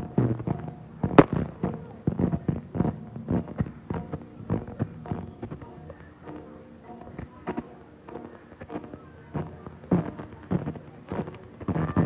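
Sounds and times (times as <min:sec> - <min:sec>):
firecrackers popping: 0:00.0 - 0:06.4, 0:07.1 - 0:12.0.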